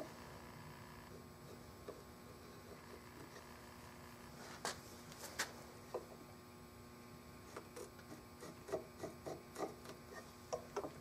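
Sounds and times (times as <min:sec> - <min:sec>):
pencil scratching on wood: 0:07.5 - 0:10.3.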